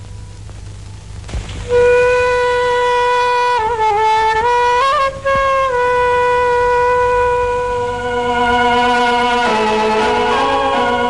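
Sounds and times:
lower instrument note: 1.6s - 11.0s
wind instrument long note: 1.6s - 11.0s.

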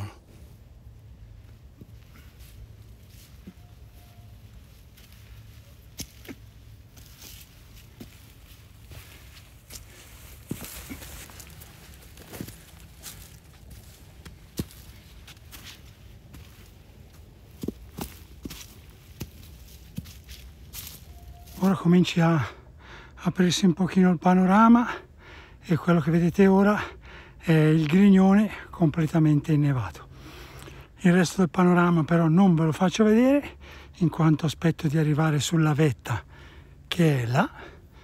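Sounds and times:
footsteps on rocks and dry leaves: 1.4s - 22.1s.

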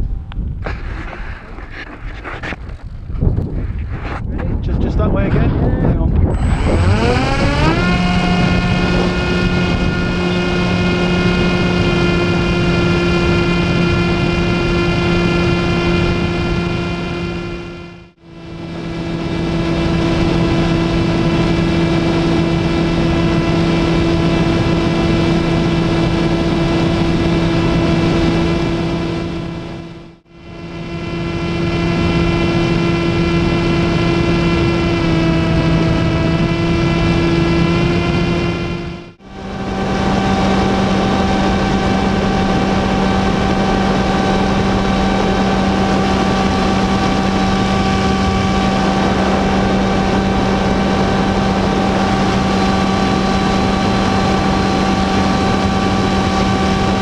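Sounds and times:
electric motor and propeller: 0.0s - 57.0s
wind noise: 0.0s - 57.0s.

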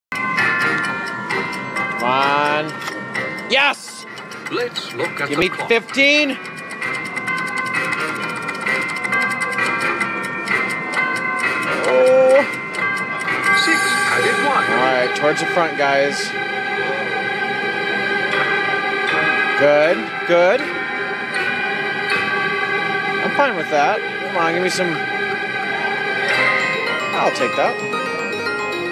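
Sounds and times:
clock ticks: 0.1s - 16.4s
slot machine electronic music: 0.1s - 28.9s
bell-like chime tones: 0.2s - 28.9s
bright shimmer: 13.4s - 17.2s.

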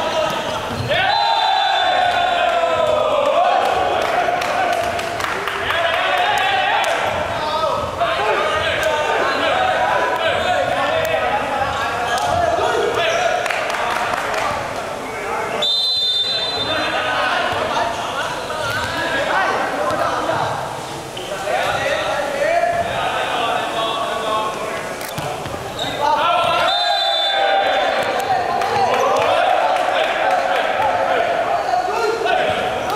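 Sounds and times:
voices of people: 0.0s - 32.9s.

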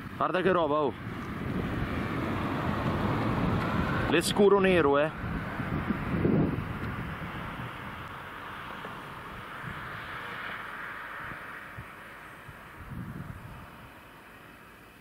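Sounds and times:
low wind buffets: 0.0s - 14.5s
wind on microphone: 0.9s - 8.1s, 9.3s - 10.1s, 11.2s - 14.0s.

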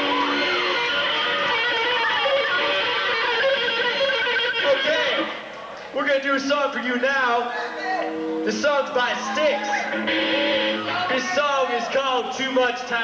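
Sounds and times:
electric guitar through amplifier: 0.0s - 6.0s, 6.6s - 12.4s
voices: 4.5s - 13.0s.

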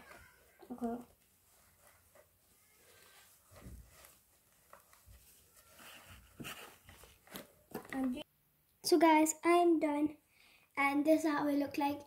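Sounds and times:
tissue rubbing on plastic: 0.0s - 7.3s.

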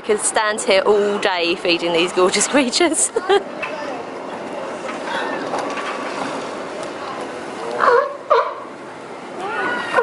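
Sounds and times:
people's voices: 0.0s - 8.2s
sea lions barking: 7.6s - 10.0s.

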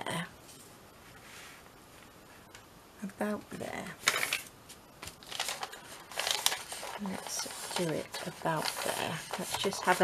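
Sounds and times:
paper rustling and crinkling: 5.0s - 10.0s.

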